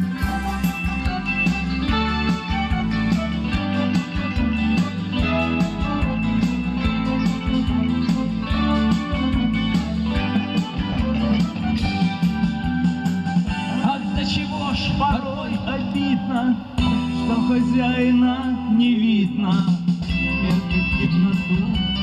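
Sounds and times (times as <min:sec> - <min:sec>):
drum kit beat: 0:00.0 - 0:18.2, 0:19.3 - 0:22.0
amplified guitar melody: 0:00.0 - 0:22.0
bass line: 0:00.0 - 0:22.0.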